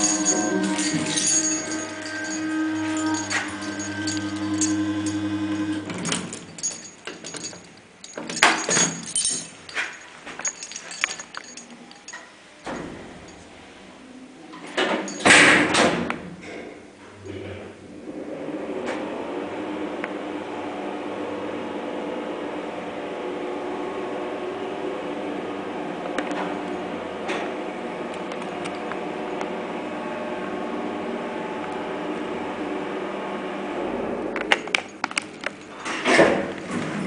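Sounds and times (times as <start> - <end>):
electric hum with buzz: 0.0 - 9.5
elevator doors opening: 0.0 - 10.0.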